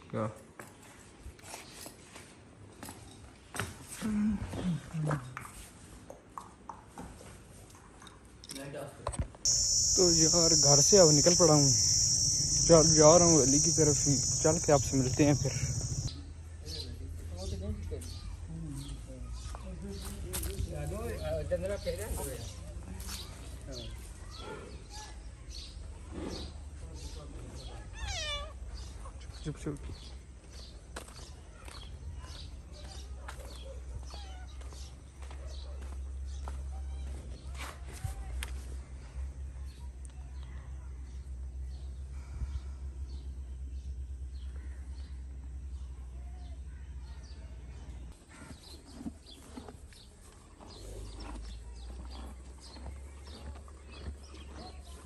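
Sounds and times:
bird chirps: 0:09.5 - 0:16.9
cat meowing: 0:28.0 - 0:28.6.

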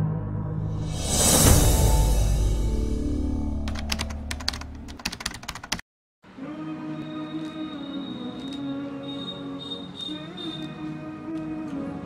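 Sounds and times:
low drone: 0:00.0 - 0:04.9
slow background music: 0:00.0 - 0:04.9, 0:06.4 - 0:12.0.

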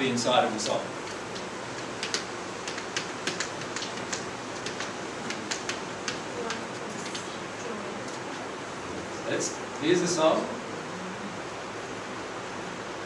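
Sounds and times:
room hiss: 0:00.0 - 0:13.0
faint clicks and ticks: 0:01.0 - 0:07.3.

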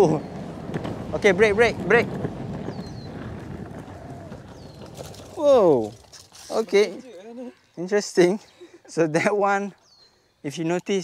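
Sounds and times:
wind on microphone: 0:00.0 - 0:06.1
skateboard wheels rumbling on concrete: 0:00.0 - 0:07.0.

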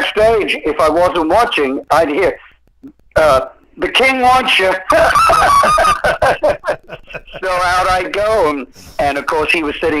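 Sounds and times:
man laughing heartily: 0:04.9 - 0:07.6.

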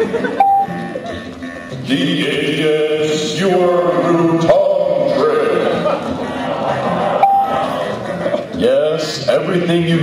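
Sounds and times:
background music: 0:00.0 - 0:10.0
short beep tone: 0:00.4 - 0:00.9, 0:07.2 - 0:07.6.

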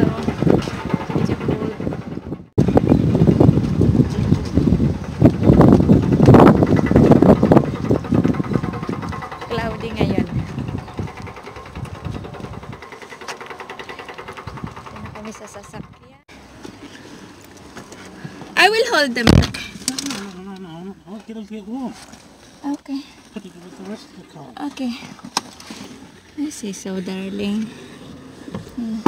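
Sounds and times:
wind buffeting microphone: 0:00.0 - 0:16.3.

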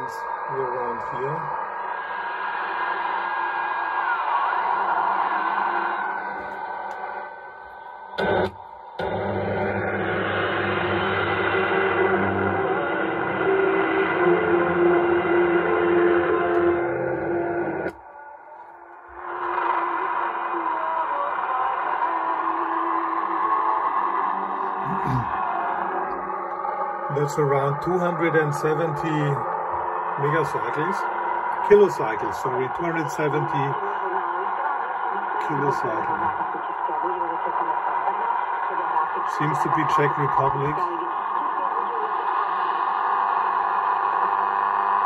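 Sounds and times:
radio noise and interference: 0:08.2 - 0:18.0, 0:19.2 - 0:45.0.

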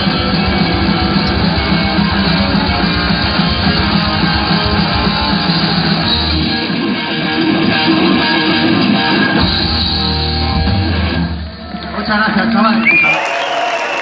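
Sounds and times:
live rock band playing: 0:00.0 - 0:13.1.

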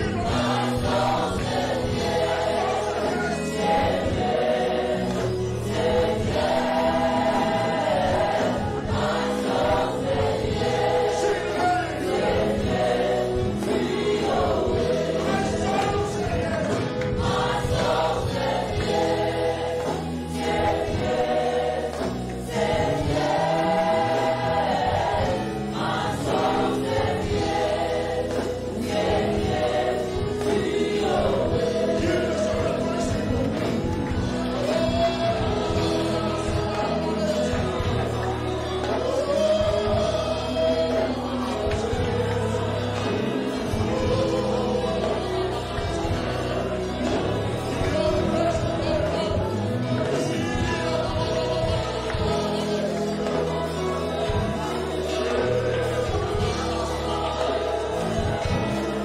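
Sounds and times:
congregation singing: 0:00.0 - 0:59.0
live band with drum kit: 0:00.0 - 0:59.0.

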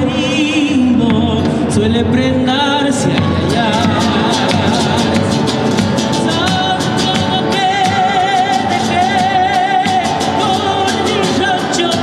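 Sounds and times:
acoustic guitar: 0:00.0 - 0:12.0
bass drum steady beat: 0:03.0 - 0:08.8.

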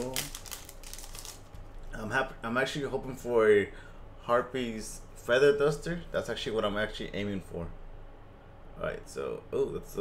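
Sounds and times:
foil wrapper crinkling: 0:00.0 - 0:01.9.

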